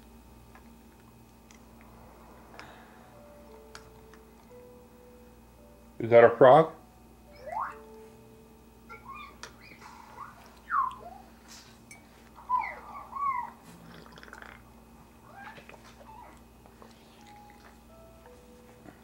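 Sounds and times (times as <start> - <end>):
cat meowing: 15.2 - 16.4.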